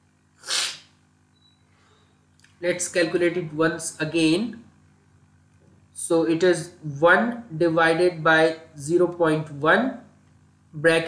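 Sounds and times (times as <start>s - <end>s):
person sneezing: 0.4s - 0.9s.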